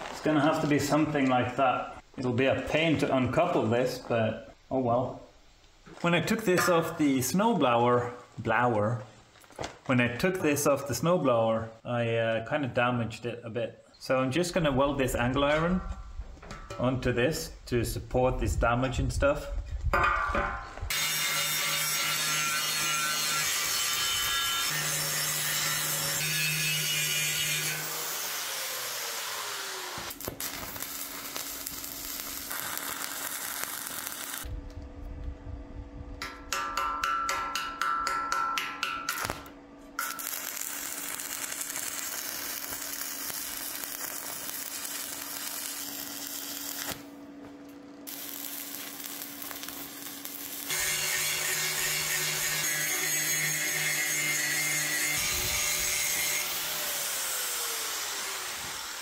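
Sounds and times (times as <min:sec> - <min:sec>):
stick welding crackling: 0:00.0 - 0:01.6, 0:20.8 - 0:34.8, 0:39.1 - 0:47.2, 0:48.0 - 0:59.0
steady welding hum: 0:14.0 - 0:59.0
angle grinder grinding steel: 0:20.9 - 0:30.1, 0:48.1 - 0:59.0.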